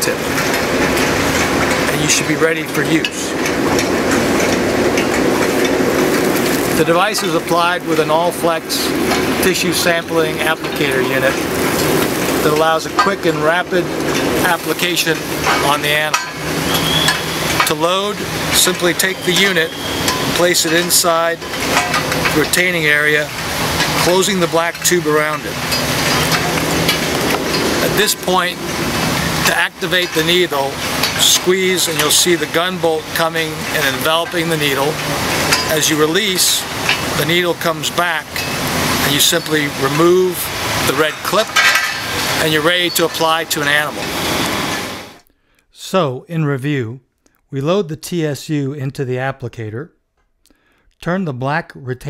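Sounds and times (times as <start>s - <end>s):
low hum with hiss: 0.0s - 49.9s.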